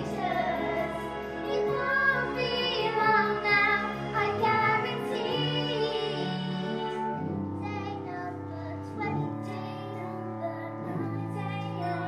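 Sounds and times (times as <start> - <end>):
girls singing with vibrato: 0.0 - 12.0
instrumental accompaniment: 0.0 - 12.0.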